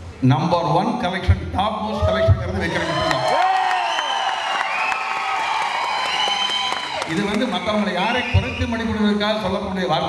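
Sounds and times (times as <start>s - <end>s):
crowd cheering and applauding: 2.6s - 8.8s.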